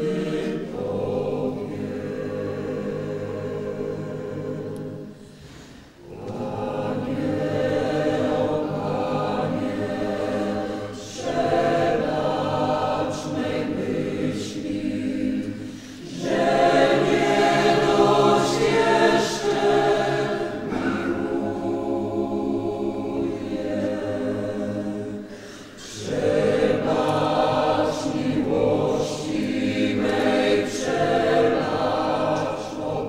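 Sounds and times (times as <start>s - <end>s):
group singing a hymn: 0.0s - 33.0s.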